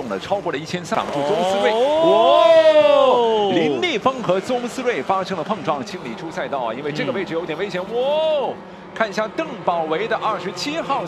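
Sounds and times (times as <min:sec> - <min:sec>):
race commentator talking fast: 0:00.0 - 0:11.0.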